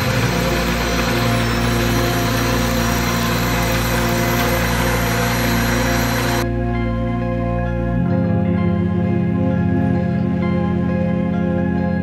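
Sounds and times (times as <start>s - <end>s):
drill driving a grain mill: 0.0s - 6.4s.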